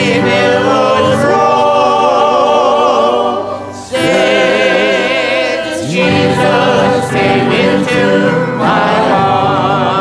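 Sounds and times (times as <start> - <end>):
church choir singing: 0.0 - 10.0.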